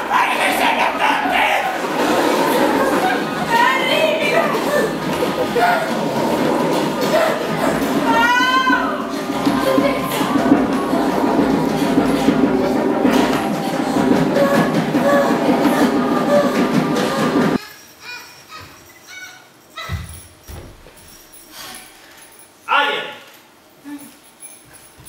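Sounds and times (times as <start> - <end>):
rumbling noise: 0.0 - 17.6
many voices crying out: 0.0 - 18.3.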